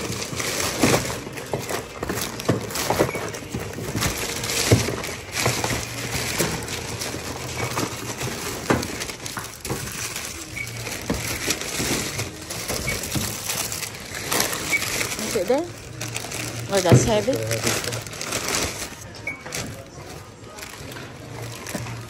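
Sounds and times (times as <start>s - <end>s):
plastic bags rustling: 0.0s - 22.0s.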